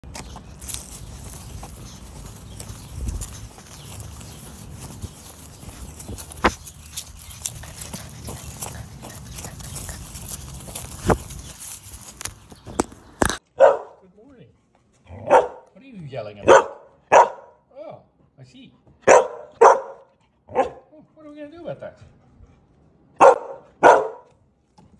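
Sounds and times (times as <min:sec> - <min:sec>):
wind rumbling on microphone: 0:00.6 - 0:13.3
dog barking: 0:13.5 - 0:14.0, 0:15.2 - 0:15.7, 0:16.4 - 0:17.6, 0:19.0 - 0:20.9, 0:23.2 - 0:24.3.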